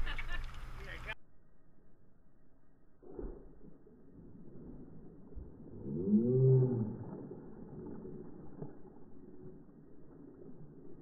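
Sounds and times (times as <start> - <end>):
water noise: 0.0 - 1.2, 3.0 - 11.0.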